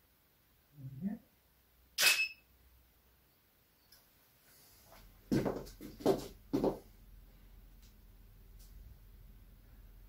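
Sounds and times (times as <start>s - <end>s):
camera shutter click: 2.0s - 2.4s.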